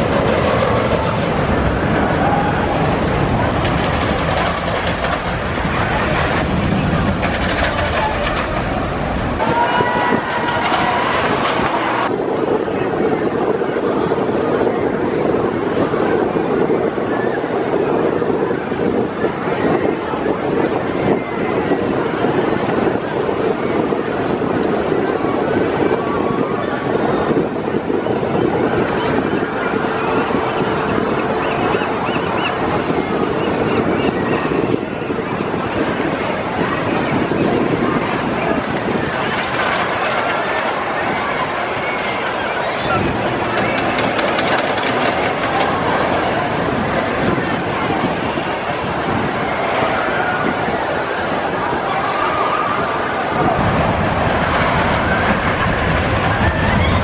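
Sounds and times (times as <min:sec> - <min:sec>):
people's voices: 0:00.0 - 0:57.0
roller coaster wheels on rails: 0:00.0 - 0:57.0.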